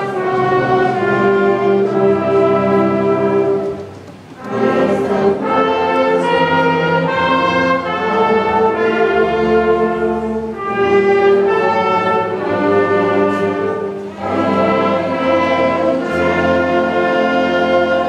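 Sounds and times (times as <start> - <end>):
brass ensemble playing slow chords: 0.0 - 18.0.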